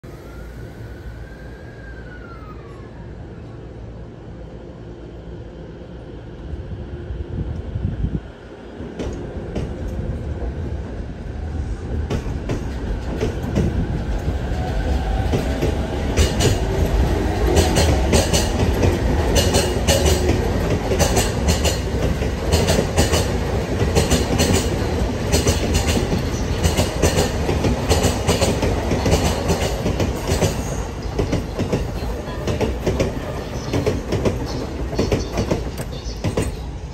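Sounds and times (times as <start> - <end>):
electric train rumbling past: 0.0 - 36.9
train wheels clicking on rail joints: 8.8 - 10.2, 11.9 - 36.7.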